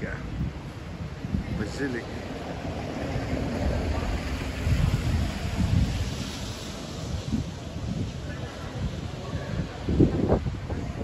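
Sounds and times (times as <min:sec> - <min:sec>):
steady outdoor hiss: 0:00.0 - 0:11.0
wind buffeting microphone: 0:00.0 - 0:11.0.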